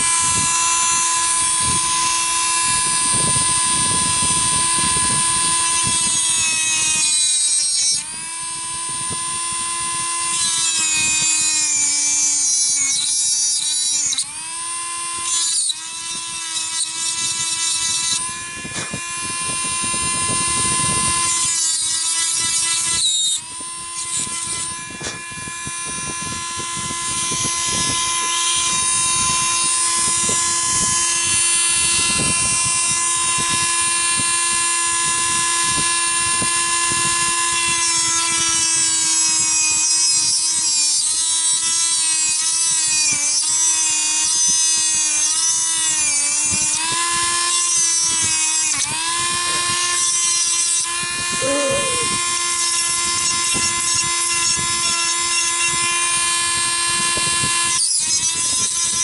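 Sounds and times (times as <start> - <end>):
rotary tool whining: 0.0 - 59.0.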